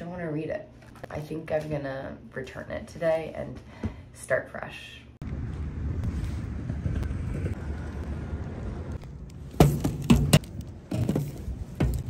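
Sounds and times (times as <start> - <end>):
street noise: 5.2 - 12.0
wind: 5.2 - 12.0.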